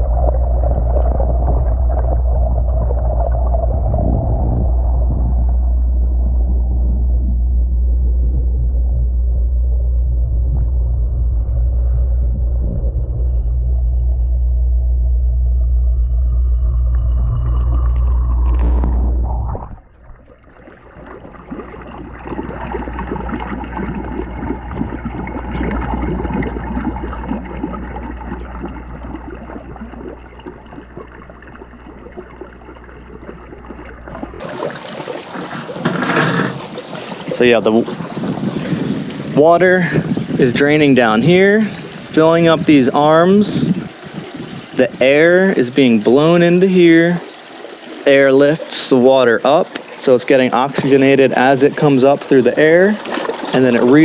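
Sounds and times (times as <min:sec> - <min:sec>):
underwater pump rumble: 0:00.0 - 0:54.0
water swirling and bubbling: 0:00.0 - 0:54.0.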